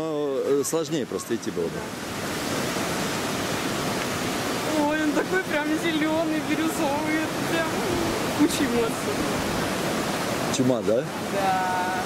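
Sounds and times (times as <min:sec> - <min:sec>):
stream rushing into pool: 0:00.0 - 0:12.0.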